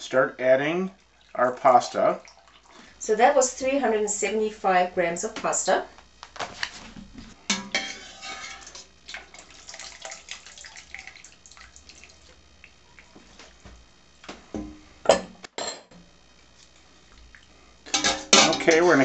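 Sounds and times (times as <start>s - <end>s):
dripping water: 0.9s - 3.0s, 9.1s - 13.4s, 17.1s - 17.6s
metal utensil clinking on pan: 7.5s - 8.6s, 17.9s - 18.8s.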